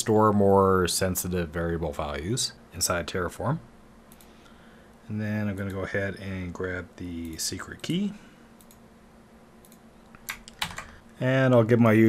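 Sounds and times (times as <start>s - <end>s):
computer keyboard key presses: 9.7s - 10.9s.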